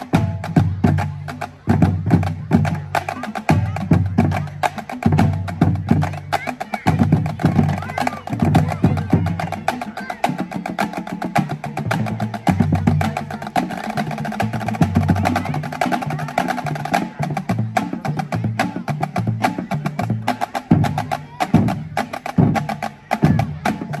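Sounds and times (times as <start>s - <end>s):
marching bass drums: 0.0s - 24.0s.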